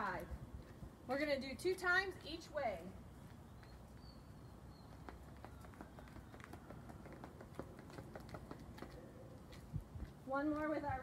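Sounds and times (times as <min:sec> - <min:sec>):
sneaker footsteps on concrete: 0:02.8 - 0:11.0.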